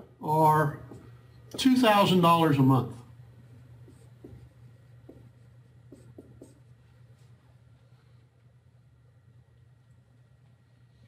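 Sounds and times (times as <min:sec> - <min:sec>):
steady low room hum: 0:00.0 - 0:11.0
marker writing on whiteboard: 0:00.8 - 0:02.2, 0:02.9 - 0:07.8.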